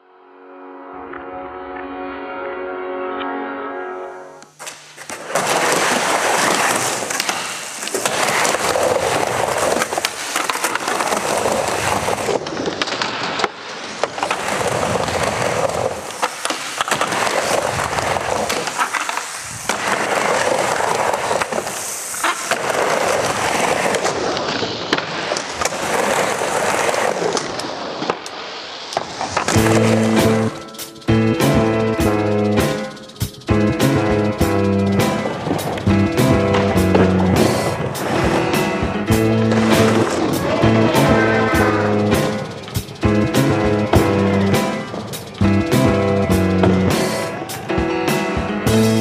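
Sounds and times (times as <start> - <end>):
music: 0.0 - 4.6, 29.5 - 49.0
skateboard wheels rolling: 4.5 - 49.0
skateboard popping and landing: 4.6 - 28.3, 29.0 - 30.6.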